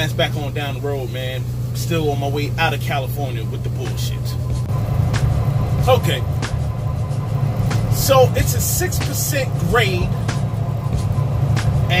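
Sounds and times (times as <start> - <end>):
truck diesel engine drone: 0.0 - 12.0.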